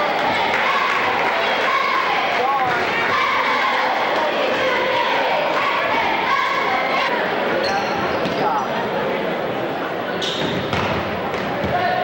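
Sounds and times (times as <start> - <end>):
chatter of spectators: 0.0 - 12.0
sneaker squeaks: 7.6 - 8.7, 10.2 - 11.0.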